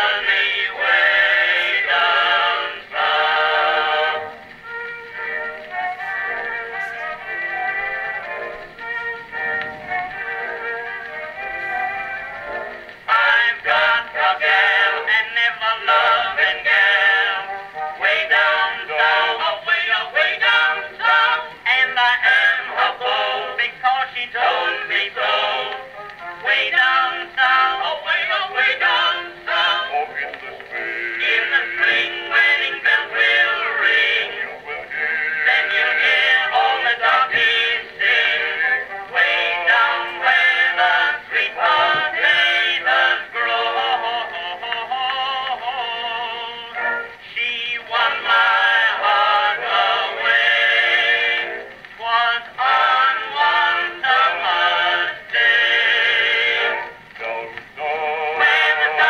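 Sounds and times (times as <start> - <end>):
male vocal group singing in harmony: 0.0 - 4.4, 13.1 - 59.0.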